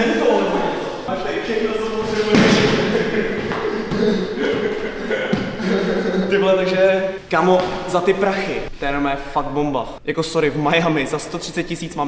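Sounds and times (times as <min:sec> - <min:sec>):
voices in echoing room: 0:00.0 - 0:12.0
loud thump: 0:02.1 - 0:03.7.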